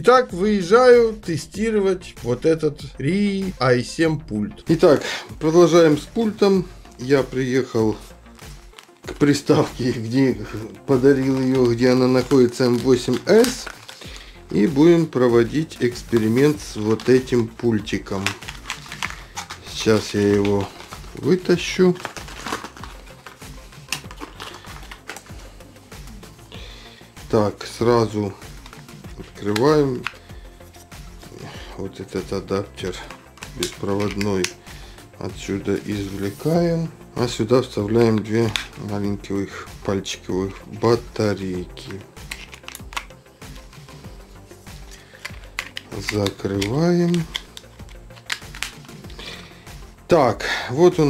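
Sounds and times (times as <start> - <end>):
plastic packaging crackling: 7.9 - 25.5, 32.9 - 34.6, 41.6 - 43.7, 44.8 - 49.2
plastic cover clicks and taps: 18.1 - 21.1, 22.0 - 25.3, 29.5 - 30.2, 33.1 - 34.6, 41.8 - 43.2, 45.1 - 49.1.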